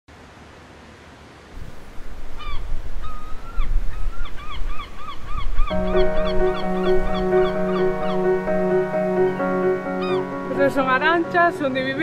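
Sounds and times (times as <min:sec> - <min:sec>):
gulls calling: 0:02.3 - 0:12.0
music: 0:05.7 - 0:12.0.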